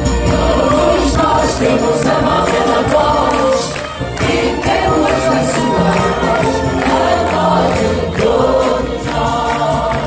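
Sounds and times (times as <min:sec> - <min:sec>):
live pop song with orchestra: 0:00.0 - 0:10.0.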